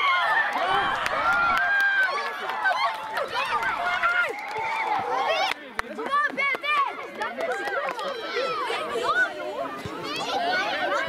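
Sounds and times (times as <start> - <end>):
crowd of voices shouting: 0.0 - 5.5.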